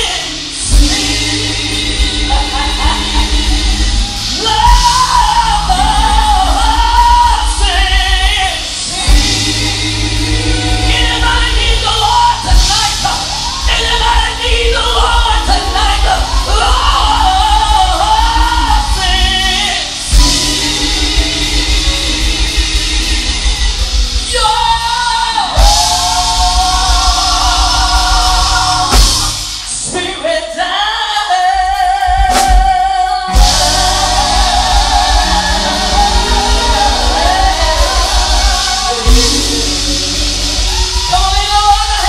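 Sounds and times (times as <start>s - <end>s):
bass guitar: 0.0s - 29.8s, 33.3s - 42.0s
drums: 0.0s - 42.0s
person singing: 0.0s - 42.0s.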